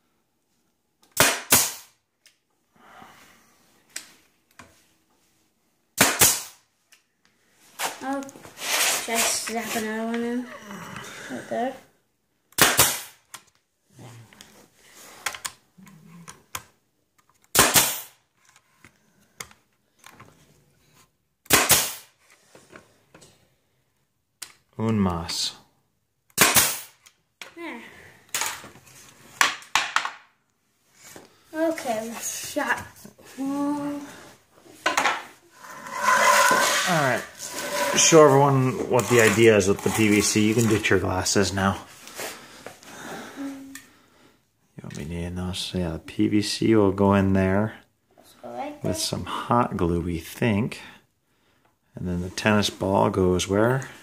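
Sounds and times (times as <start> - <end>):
nail gun firing: 1.1 - 1.9, 6.0 - 6.6, 12.6 - 13.2, 17.5 - 18.1, 21.5 - 22.1, 26.4 - 27.0
hammering nails into wood: 6.0 - 6.5.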